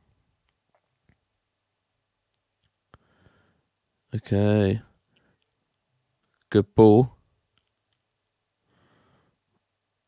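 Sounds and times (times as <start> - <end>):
man speaking: 4.1 - 4.9, 6.5 - 7.2.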